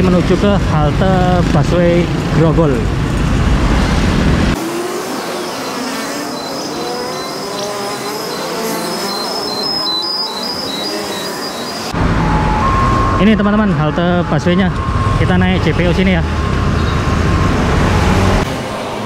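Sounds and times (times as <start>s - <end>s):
road traffic: 0.0s - 19.0s
sped up high-pitched traffic noise: 3.2s - 19.0s
stepping high tones: 5.2s - 18.4s.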